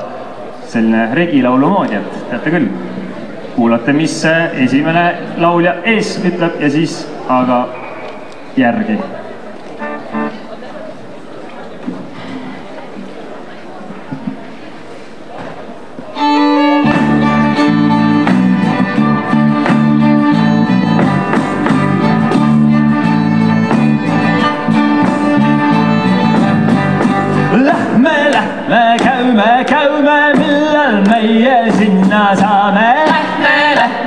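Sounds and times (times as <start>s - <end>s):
bass guitar: 9.8s - 10.5s, 16.4s - 29.5s
fiddle playing tune: 9.8s - 10.6s, 16.1s - 27.7s
electric guitar: 16.4s - 28.0s
singing voices: 24.0s - 34.0s.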